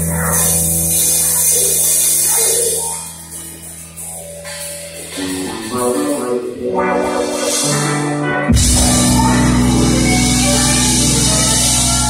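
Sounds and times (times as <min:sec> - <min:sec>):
held low bass note: 0:00.0 - 0:12.0
live rock band: 0:00.0 - 0:12.0.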